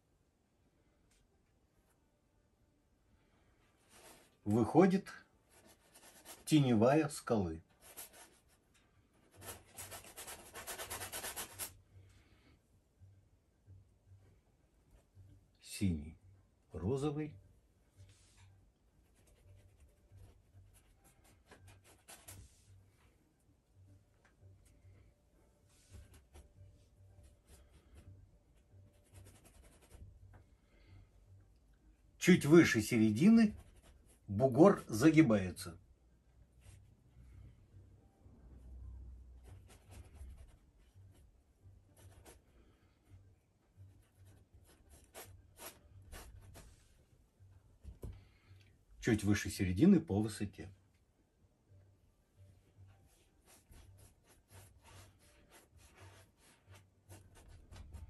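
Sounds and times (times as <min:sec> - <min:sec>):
paintbrush scratching on canvas: 0:03.8 - 0:04.5, 0:05.5 - 0:06.7, 0:07.7 - 0:08.6, 0:09.2 - 0:11.8, 0:19.0 - 0:22.7, 0:28.9 - 0:30.0, 0:41.9 - 0:42.5, 0:43.9 - 0:46.8, 0:53.0 - 0:58.0.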